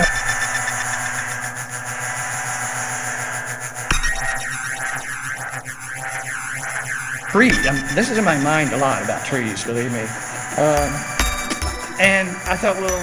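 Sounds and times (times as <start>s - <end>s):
repeating whooshing sweep: 0.0s - 12.9s
electronic drone: 0.0s - 13.0s
sharp hit: 0.0s - 13.0s.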